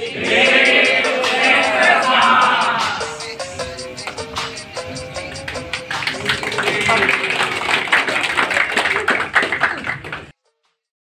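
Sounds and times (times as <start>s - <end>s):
voices: 0.0s - 3.4s, 4.6s - 10.2s
group of people clapping: 4.0s - 4.6s, 5.2s - 10.3s.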